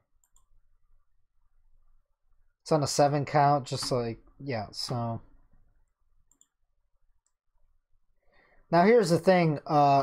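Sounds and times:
faint computer mouse clicks: 0.2s - 0.5s, 6.3s - 6.6s.

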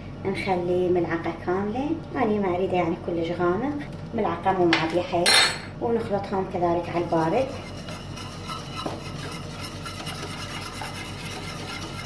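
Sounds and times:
whisk stirring in metal pot: 6.6s - 12.0s.

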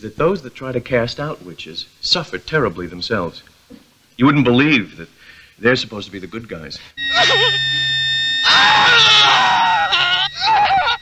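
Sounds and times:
person screaming: 8.4s - 11.0s.

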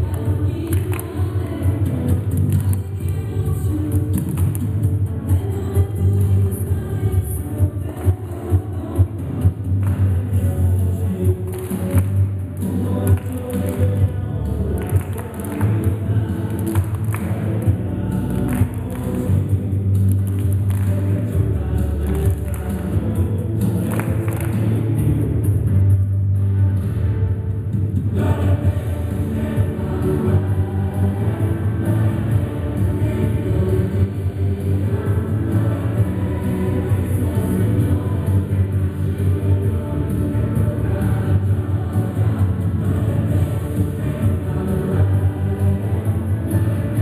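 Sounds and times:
upbeat children's song with singing: 0.0s - 27.1s, 27.7s - 47.0s
steady bass beat: 0.0s - 47.0s.

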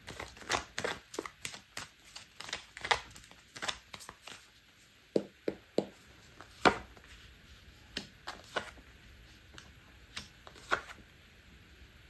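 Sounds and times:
cards shuffling: 0.0s - 4.5s, 6.2s - 11.0s
cards slapping on table: 6.6s - 7.0s.

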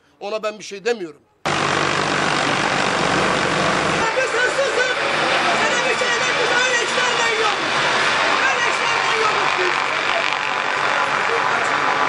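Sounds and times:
street traffic: 1.5s - 12.0s
people's voices: 3.8s - 12.0s.

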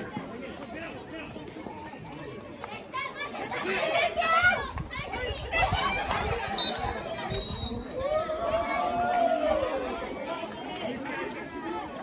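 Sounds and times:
crowd shouting and calling: 0.0s - 12.0s.

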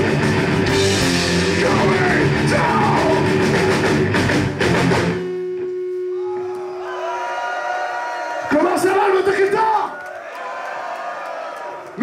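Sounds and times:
crowd cheering and shouting: 1.2s - 4.3s, 6.1s - 12.0s
man yelling over loudspeaker: 1.6s - 3.2s.

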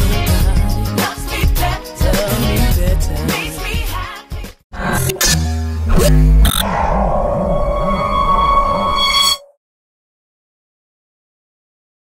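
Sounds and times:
warbling synth chord: 4.8s - 7.6s
deep bass hit: 5.1s - 7.2s.

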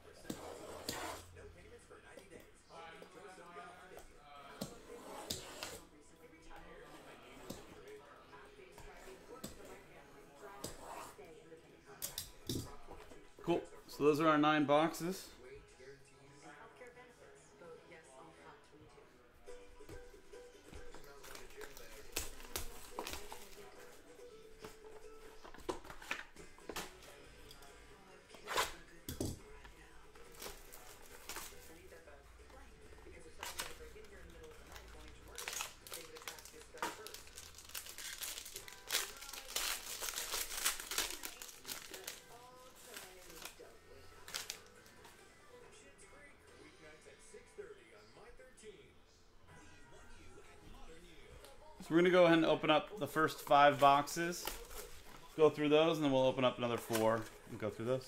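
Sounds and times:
plastic wrap crinkling and tearing: 21.1s - 23.7s, 34.7s - 44.7s.

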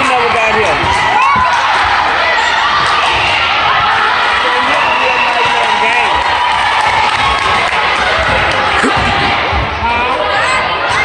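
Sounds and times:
crowd talking shouting and cheering: 0.0s - 11.0s.

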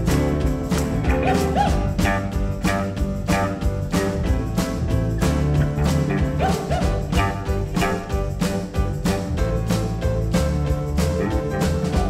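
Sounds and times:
drums: 0.0s - 12.0s
electric bass: 0.0s - 12.0s
electric guitar: 0.0s - 12.0s
keyboard: 0.0s - 12.0s.

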